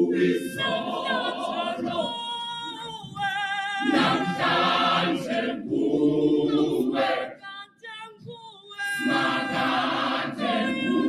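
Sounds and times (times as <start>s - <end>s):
choir singing gospel unaccompanied: 0.0s - 7.6s, 8.8s - 11.0s.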